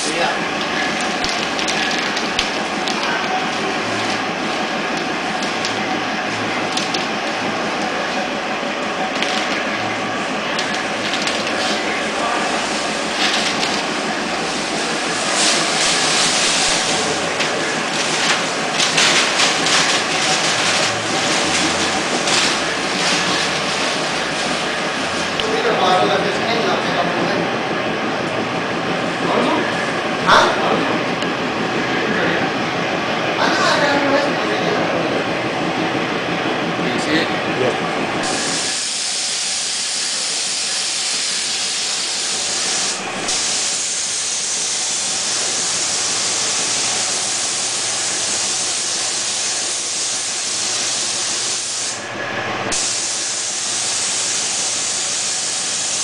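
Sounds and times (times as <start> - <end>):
paint booth equipment running: 0.0 - 56.0
spray gun air hiss: 10.7 - 25.4, 38.2 - 52.0, 52.7 - 56.0.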